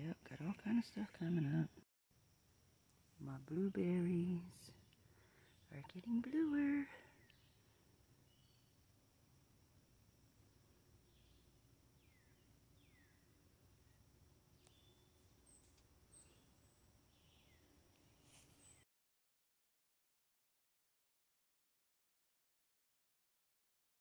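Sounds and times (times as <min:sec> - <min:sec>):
faint bird chirps: 0:03.6 - 0:08.9, 0:10.8 - 0:18.9.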